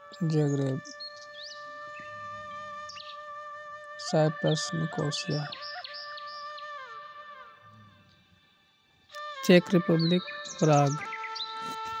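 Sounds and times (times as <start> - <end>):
soft background music: 0.0 - 2.4, 9.4 - 12.0.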